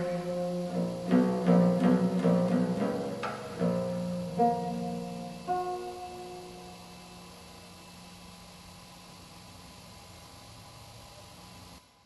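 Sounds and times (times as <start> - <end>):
plucked oud note: 0.0 - 6.6
recording hiss: 0.0 - 12.0.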